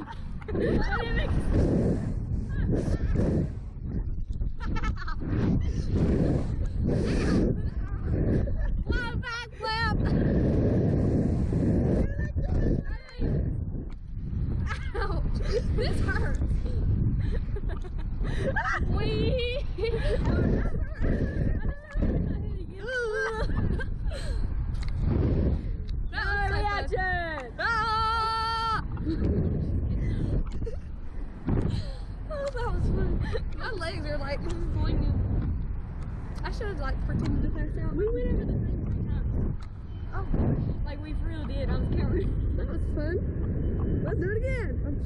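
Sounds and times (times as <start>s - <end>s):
wind rushing over microphone: 0.0s - 45.0s
gasps and laughs: 4.4s - 9.0s, 11.7s - 13.5s, 14.6s - 24.5s.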